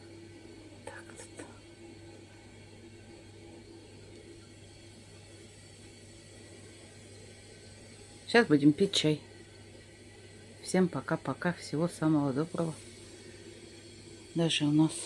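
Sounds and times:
faint low hum: 0.0 - 15.0.

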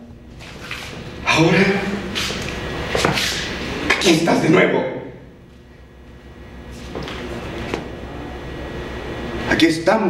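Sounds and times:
steady low hum: 0.0 - 10.0
footsteps and shuffling on stage: 2.1 - 3.5, 6.7 - 7.9.

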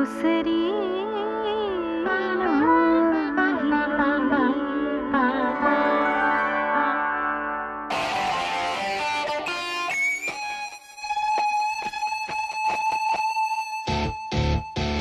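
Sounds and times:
electric guitar music: 0.0 - 15.0
plucked-string phrase: 5.4 - 10.8.

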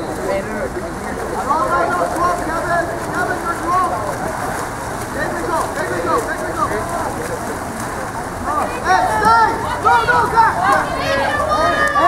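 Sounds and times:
players splashing in pool: 0.0 - 12.0
voices calling and shouting: 0.0 - 12.0.

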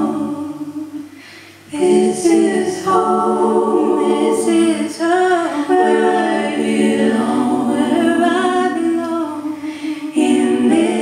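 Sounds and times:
woman singing unaccompanied: 1.7 - 11.0.

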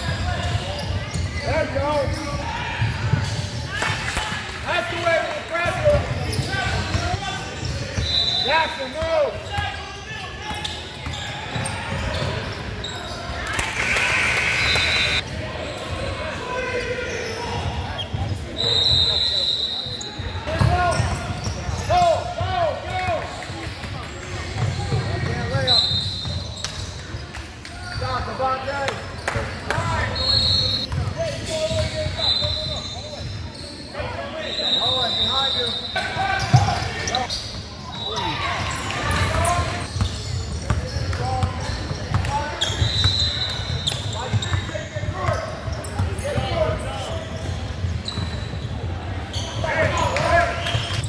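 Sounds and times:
shoe squeak: 6.1 - 8.8, 9.4 - 15.2, 30.0 - 51.0.

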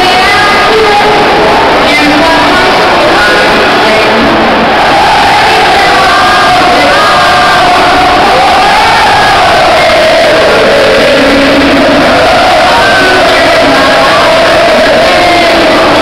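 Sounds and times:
stadium crowd cheering and singing: 0.0 - 16.0.

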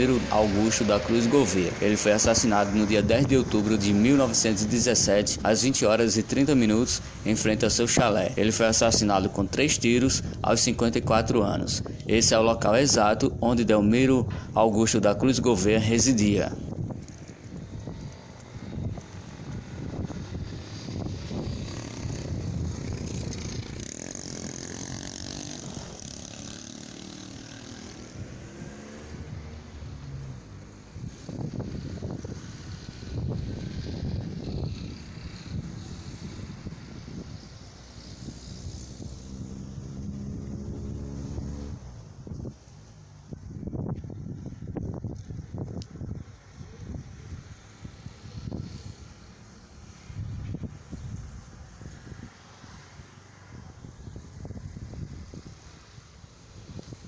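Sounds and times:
vehicle engines passing: 0.0 - 57.0.

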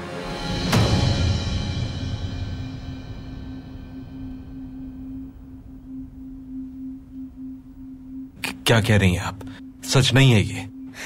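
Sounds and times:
low rumble: 0.5 - 11.0
pulsing low note: 0.6 - 11.0.

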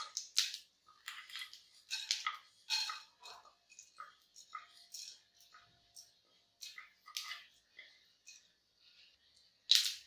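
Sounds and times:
seeds spluttering in hot oil: 0.0 - 10.0.

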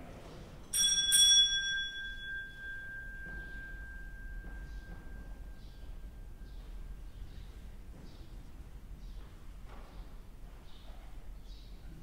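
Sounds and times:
small bell ringing: 0.7 - 7.3.

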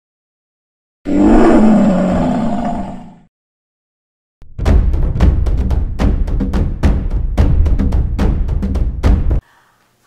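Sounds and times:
lion roaring: 1.1 - 3.3.

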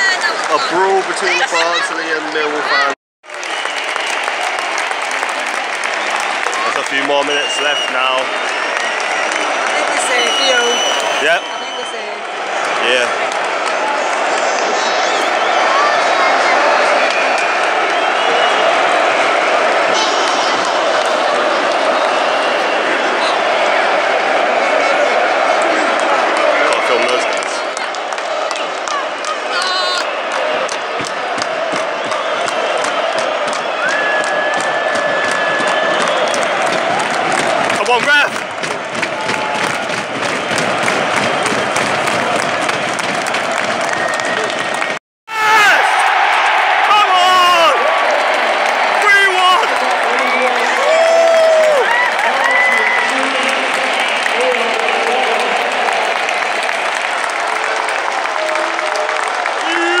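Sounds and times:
stadium crowd cheering: 0.0 - 60.0
crowd chanting and singing: 9.5 - 45.0.

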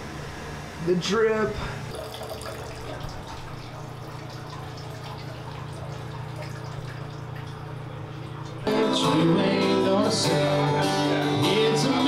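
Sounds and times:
country music on acoustic guitar: 8.6 - 12.0.

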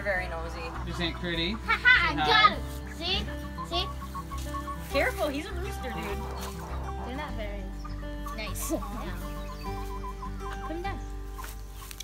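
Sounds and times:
background music: 0.0 - 12.0
chickens clucking: 0.0 - 12.0.

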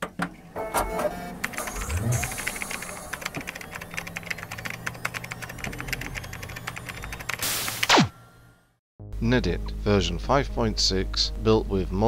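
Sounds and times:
rapid keyboard clicking: 1.4 - 7.4.

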